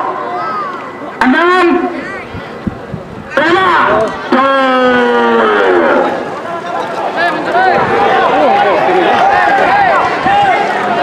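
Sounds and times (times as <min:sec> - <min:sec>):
crowd shouting: 0:00.0 - 0:02.3, 0:03.3 - 0:11.0.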